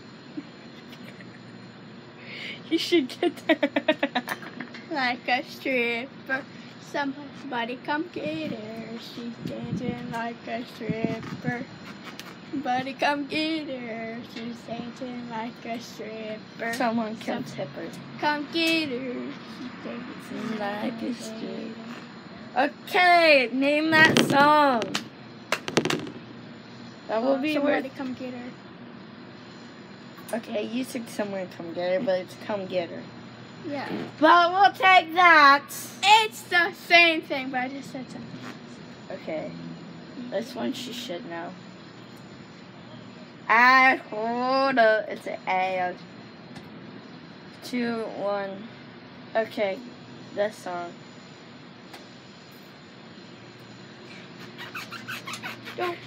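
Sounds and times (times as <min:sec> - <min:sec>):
steady background noise: 0:00.0 - 0:56.0
sharp pops or clicks: 0:24.0 - 0:26.3.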